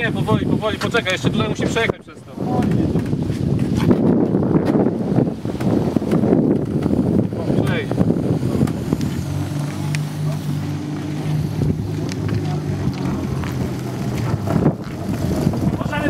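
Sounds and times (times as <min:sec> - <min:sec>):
vehicle engine humming: 0:00.0 - 0:16.0
wind on microphone: 0:00.0 - 0:16.0.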